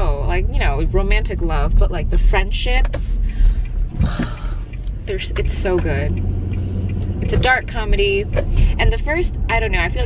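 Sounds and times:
car cabin road and engine rumble: 0:00.0 - 0:10.0.

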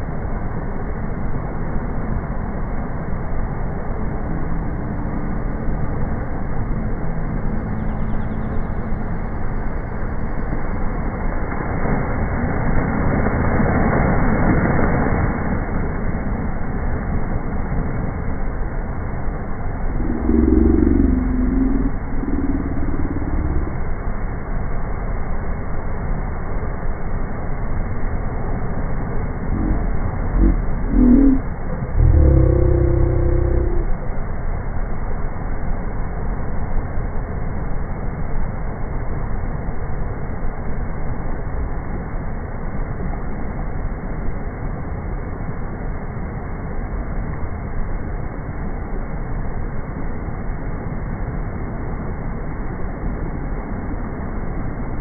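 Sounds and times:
low droning tones: 0:00.0 - 0:42.2
waves breaking on sand: 0:11.4 - 0:16.2.

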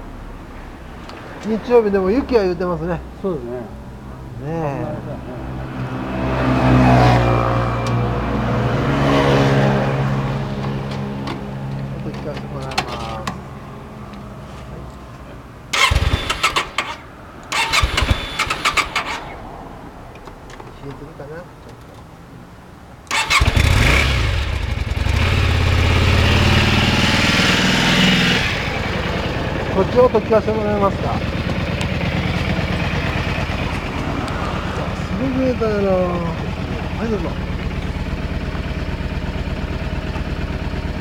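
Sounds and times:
motorcycle engine revving: 0:15.7 - 0:19.4, 0:23.1 - 0:41.0.

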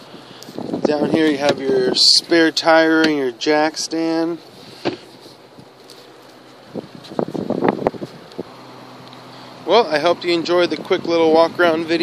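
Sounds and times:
microphone handling knocks and rustling: 0:04.7 - 0:08.5
wind on microphone: 0:06.7 - 0:08.4.

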